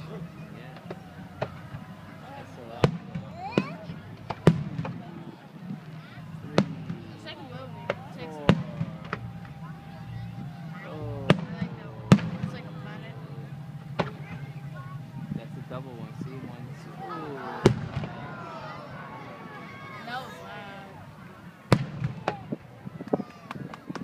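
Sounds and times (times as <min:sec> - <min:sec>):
fireworks bangs: 0:00.1 - 0:24.0.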